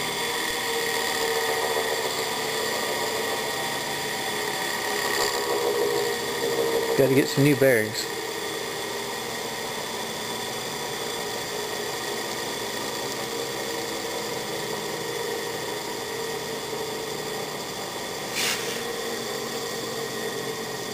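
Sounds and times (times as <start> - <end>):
electric motor humming: 0.0 - 20.9.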